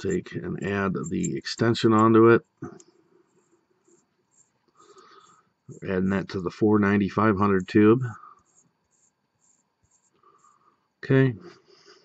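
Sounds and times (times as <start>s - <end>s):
metal threads scratching: 0.0s - 2.3s, 3.3s - 4.6s, 8.4s - 10.5s.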